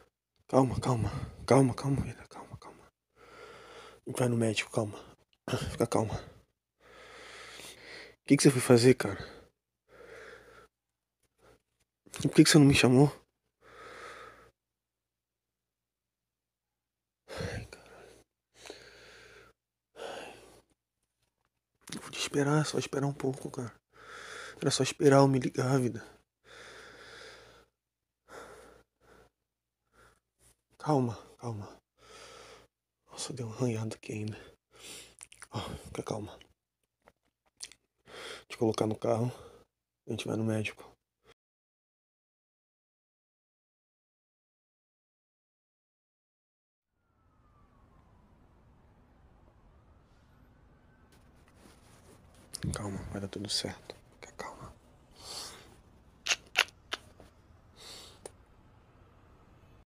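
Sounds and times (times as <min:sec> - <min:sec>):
man breathing: 0:02.7 - 0:04.1, 0:06.2 - 0:08.2, 0:09.2 - 0:11.6, 0:13.6 - 0:14.6, 0:17.3 - 0:20.8, 0:23.9 - 0:24.6, 0:26.4 - 0:30.2, 0:32.0 - 0:32.7, 0:38.0 - 0:38.5, 0:54.4 - 0:55.8, 0:57.7 - 0:58.4.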